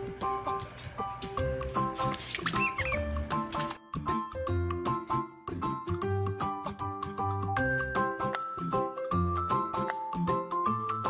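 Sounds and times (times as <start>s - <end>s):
bouncy background music: 0.0s - 11.0s
squeaky toy squeaks: 2.4s - 3.2s.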